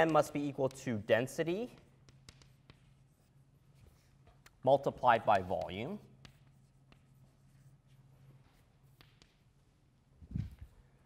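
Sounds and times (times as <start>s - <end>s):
chalk tapping and scratching: 0.0s - 11.0s.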